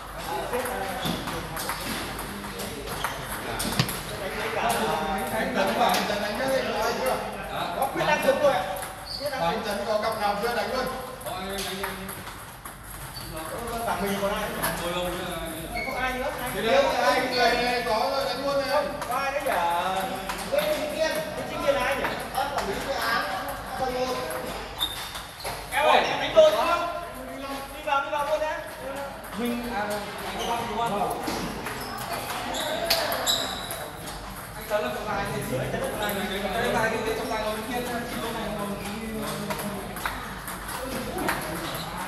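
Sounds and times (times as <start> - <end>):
indistinct chatter in echoing hall: 0.0 - 42.0
table tennis balls bouncing: 0.1 - 6.4, 8.2 - 25.7, 26.6 - 35.1, 35.7 - 42.0
table tennis ball clicking: 37.7 - 41.8.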